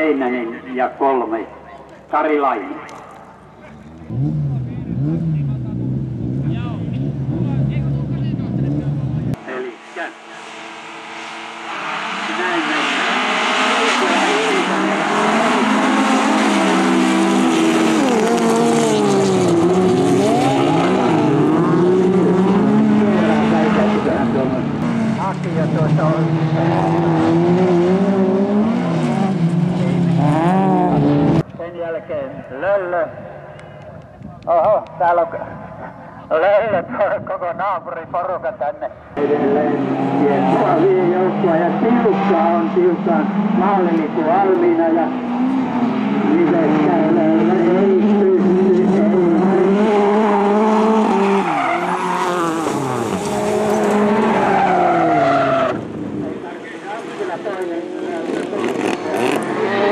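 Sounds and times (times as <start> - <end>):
racing car engines on gravel: 2.7 - 31.6, 39.2 - 59.9.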